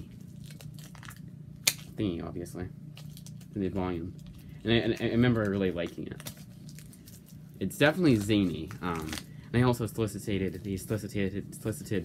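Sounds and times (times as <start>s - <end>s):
plastic wrapping crinkling: 0.0s - 2.0s, 2.9s - 11.2s
sharp plastic crackle: 0.0s - 2.1s, 2.9s - 9.4s.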